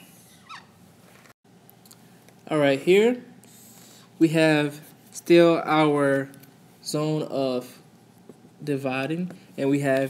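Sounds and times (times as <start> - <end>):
marker squeaking on whiteboard: 0.2 - 0.8.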